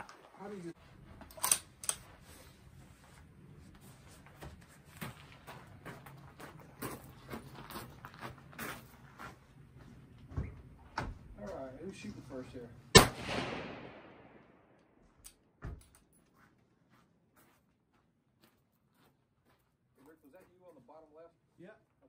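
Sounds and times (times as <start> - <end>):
footsteps on gravel: 4.1 - 10.0.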